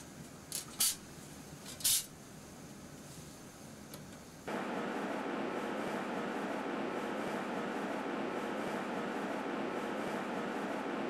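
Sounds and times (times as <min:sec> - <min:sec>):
steady rushing noise: 0:04.5 - 0:11.0.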